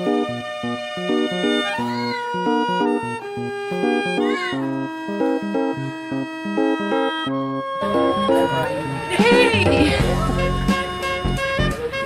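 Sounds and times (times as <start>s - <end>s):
repeating background music: 0.0s - 12.0s
cat meowing: 1.5s - 2.6s.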